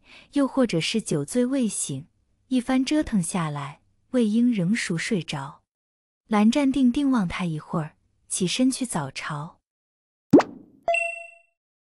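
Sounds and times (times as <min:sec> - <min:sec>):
quick pop: 0:10.3 - 0:10.8
bright chime: 0:10.9 - 0:11.5.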